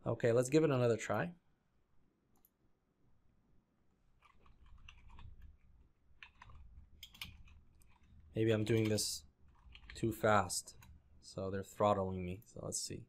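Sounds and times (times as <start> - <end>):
keyboard typing: 4.2 - 11.0.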